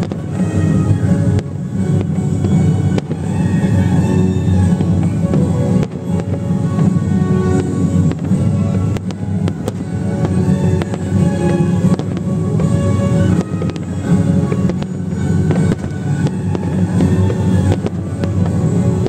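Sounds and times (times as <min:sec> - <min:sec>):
firework bangs: 0:00.0 - 0:19.0
loud music: 0:00.0 - 0:19.0.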